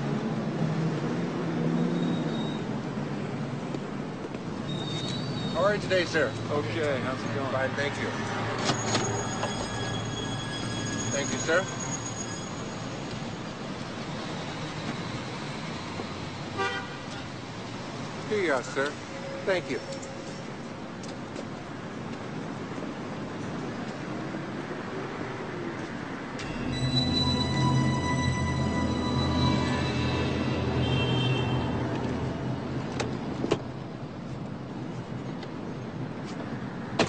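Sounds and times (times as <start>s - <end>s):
street traffic: 0.0s - 37.0s
car horn toot: 16.6s - 17.2s, 26.4s - 32.4s.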